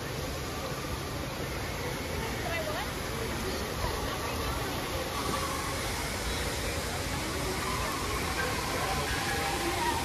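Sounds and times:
crowd chatter: 0:00.0 - 0:10.0
falling water rushing: 0:00.0 - 0:10.0.

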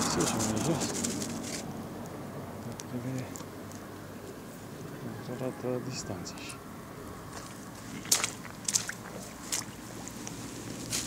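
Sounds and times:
dry stalks crackling: 0:00.0 - 0:04.4, 0:07.2 - 0:11.0.

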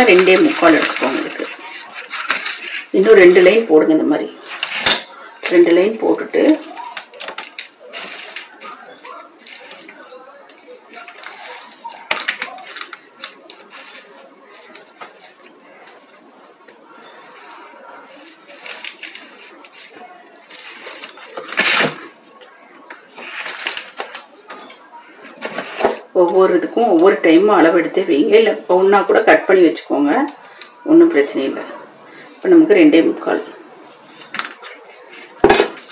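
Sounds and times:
paper rustling: 0:00.0 - 0:03.5, 0:04.4 - 0:16.6, 0:17.2 - 0:26.1, 0:33.8 - 0:35.9.

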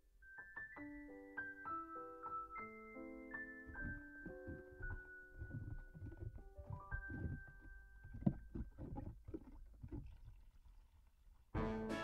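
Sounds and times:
water sloshing: 0:03.7 - 0:11.5.

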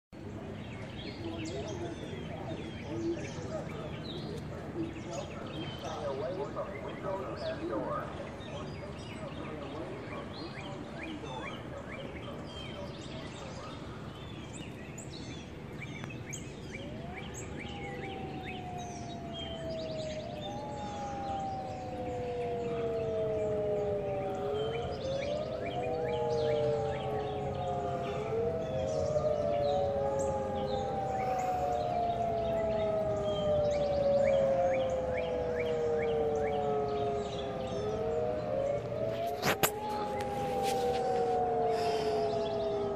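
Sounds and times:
tornado warning sirens wailing: 0:00.2 - 0:42.9.

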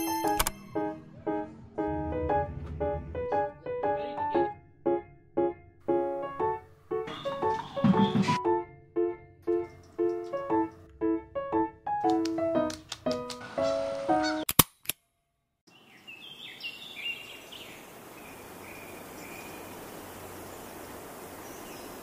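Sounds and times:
keyboard music: 0:00.0 - 0:14.5
sharp clicks: 0:00.2 - 0:00.6, 0:09.4 - 0:10.9
birds chirping: 0:07.0 - 0:08.4, 0:09.5 - 0:10.9, 0:13.4 - 0:14.5, 0:15.7 - 0:22.0
room ambience hiss: 0:16.6 - 0:22.0.

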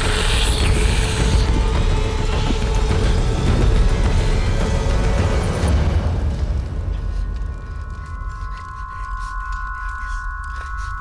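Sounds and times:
sustained high ringing tone: 0:07.6 - 0:11.0.

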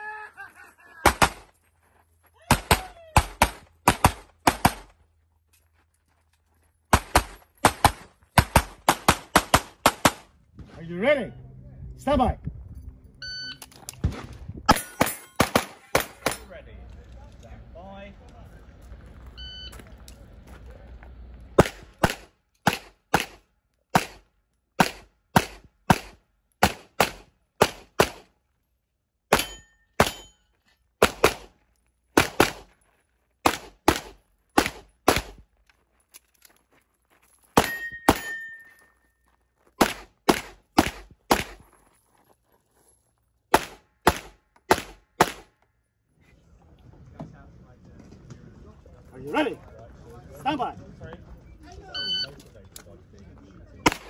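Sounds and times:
pistol shots: 0:02.5 - 0:04.9, 0:06.9 - 0:10.3, 0:14.7 - 0:16.5, 0:21.6 - 0:24.2, 0:24.8 - 0:28.3, 0:31.0 - 0:31.6, 0:32.2 - 0:32.7, 0:33.4 - 0:35.4, 0:39.8 - 0:41.6, 0:43.5 - 0:45.5
shot timer beep: 0:13.2 - 0:13.6, 0:52.0 - 0:52.3
metallic ring of target: 0:14.7 - 0:16.5, 0:29.3 - 0:30.6, 0:37.5 - 0:39.0.

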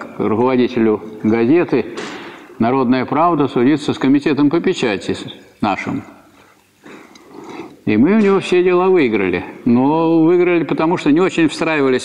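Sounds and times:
man lecturing: 0:00.0 - 0:06.3, 0:07.8 - 0:12.0
faint breathing: 0:06.4 - 0:07.8.

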